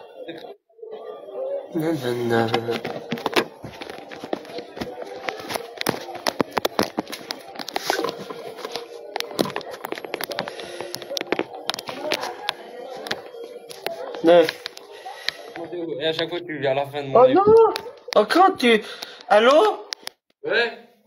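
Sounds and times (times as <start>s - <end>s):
faint indistinct voices: 0.0s - 21.0s
irregular clicks and taps: 19.9s - 20.4s.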